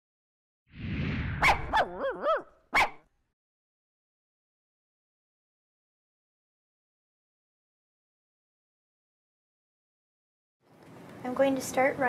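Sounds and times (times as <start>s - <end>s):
rushing whoosh: 0.8s - 1.8s
dog barking: 1.4s - 3.0s
dog whining: 1.7s - 3.0s.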